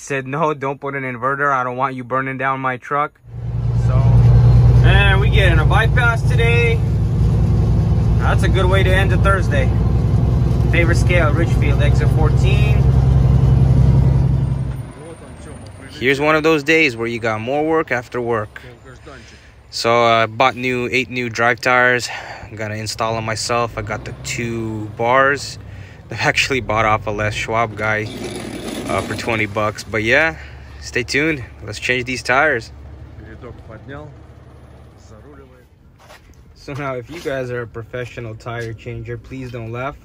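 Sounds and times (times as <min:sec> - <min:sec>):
road noise: 0:03.1 - 0:40.0
truck engine drone: 0:03.2 - 0:40.0.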